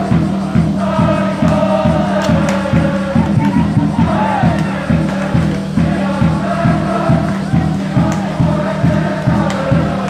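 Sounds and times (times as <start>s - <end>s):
crowd singing in unison: 0.0s - 10.0s
steady drum beat: 0.0s - 10.0s.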